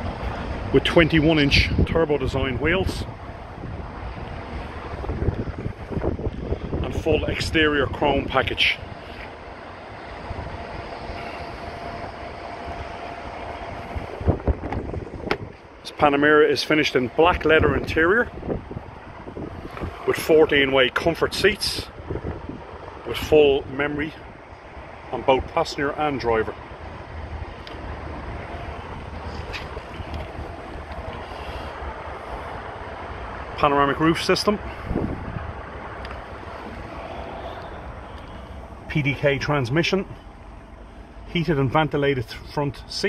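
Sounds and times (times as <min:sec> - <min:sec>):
wind rumbling on microphone: 0:00.0 - 0:41.3
low rumble: 0:21.2 - 0:41.8.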